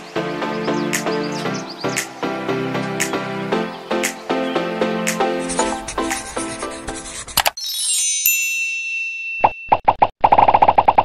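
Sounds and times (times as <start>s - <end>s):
bright high chime: 7.6s - 9.8s.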